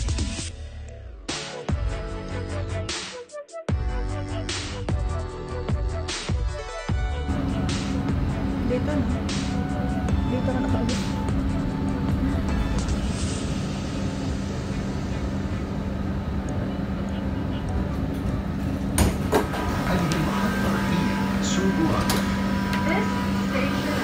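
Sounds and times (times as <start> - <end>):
music: 0.0 - 24.0
train running hum: 7.2 - 24.0
voices: 7.3 - 11.5, 19.6 - 24.0.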